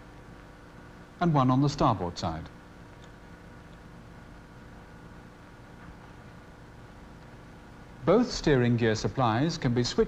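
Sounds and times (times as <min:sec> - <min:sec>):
low machinery hum: 0:00.0 - 0:10.0.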